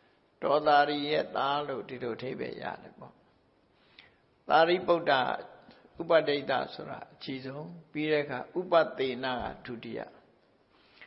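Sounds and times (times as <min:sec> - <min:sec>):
person preaching in chant-like voice: 0:00.4 - 0:03.2, 0:04.4 - 0:10.2.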